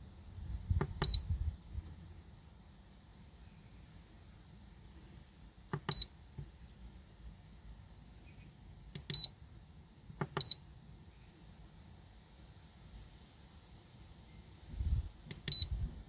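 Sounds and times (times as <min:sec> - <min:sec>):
keypad button clicks: 0:00.8 - 0:01.2, 0:05.7 - 0:06.1, 0:09.0 - 0:09.3, 0:10.2 - 0:10.6, 0:15.3 - 0:15.7
short high beeps: 0:15.5 - 0:15.7.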